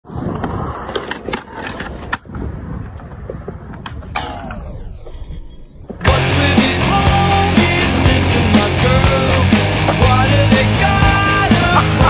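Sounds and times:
skateboard wheels rolling on concrete: 0:00.0 - 0:12.0.

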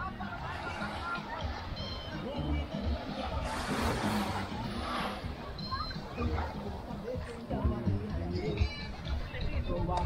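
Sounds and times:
distant voices: 0:00.0 - 0:10.0
rush of noise: 0:00.2 - 0:06.7.

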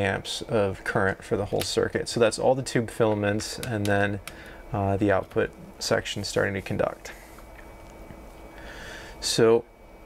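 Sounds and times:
faint low hum: 0:00.0 - 0:10.0
short breath: 0:08.6 - 0:09.2.

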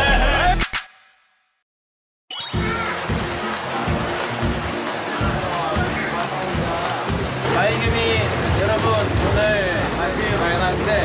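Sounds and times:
background music: 0:02.3 - 0:11.0
water churning from pool jets: 0:02.5 - 0:11.0.

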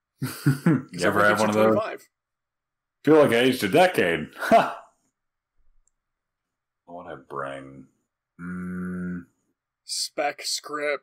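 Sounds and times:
man speaking: 0:00.9 - 0:02.1, 0:09.9 - 0:11.0.

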